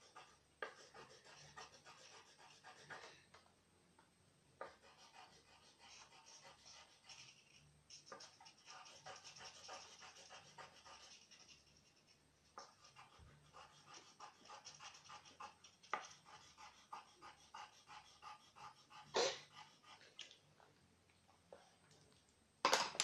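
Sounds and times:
coloured pencils scratching on paper: 0.0s - 3.2s, 4.6s - 20.2s.

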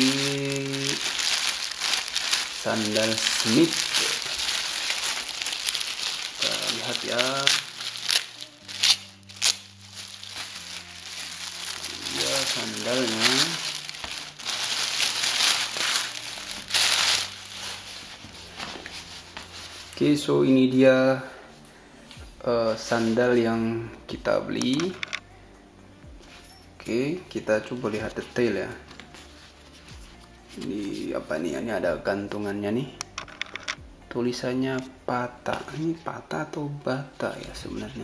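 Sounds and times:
plastic bag crinkling: 0.0s - 19.8s.

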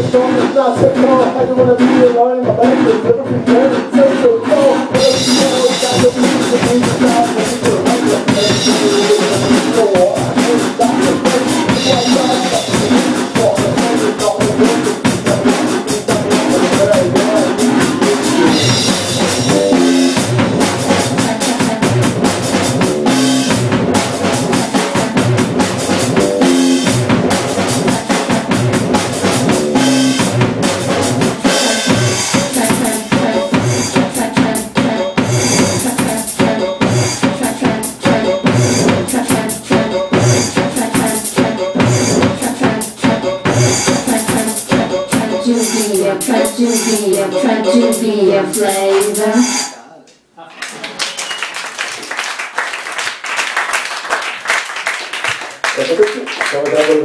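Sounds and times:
drum kit steady beat: 0.0s - 49.9s
synthesizer keyboard lines: 4.6s - 30.6s.

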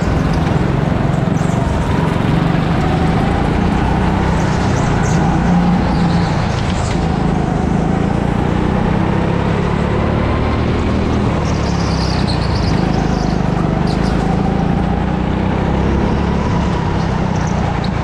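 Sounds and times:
go-kart motor running: 0.0s - 18.0s.

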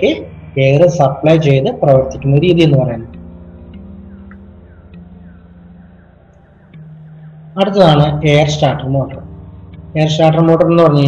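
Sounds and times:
low steady hum: 0.0s - 11.0s
faint ticks: 3.1s - 7.0s.

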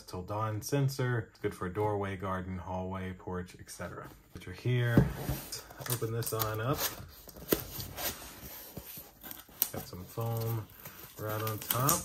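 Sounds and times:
cardboard scraping: 4.0s - 12.0s.

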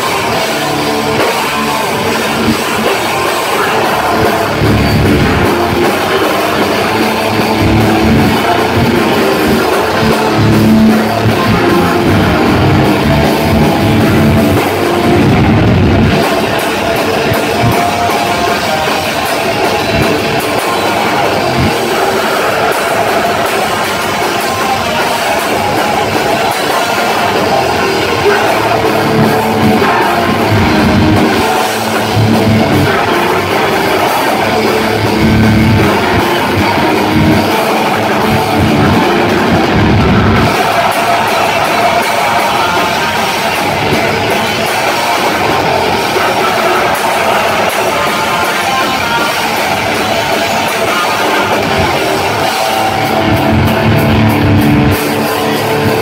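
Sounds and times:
heavy metal band playing live: 0.0s - 56.0s.

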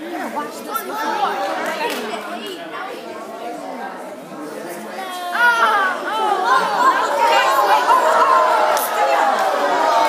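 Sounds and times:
adults and children chattering: 0.0s - 10.0s.

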